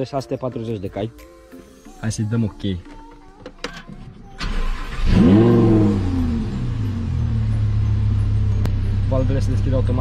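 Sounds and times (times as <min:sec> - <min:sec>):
engine idling: 0:04.4 - 0:10.0
sports car engine starting: 0:04.4 - 0:10.0.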